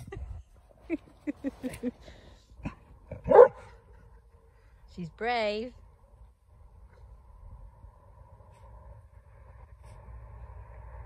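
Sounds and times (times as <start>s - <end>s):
dog barking: 3.2s - 3.8s.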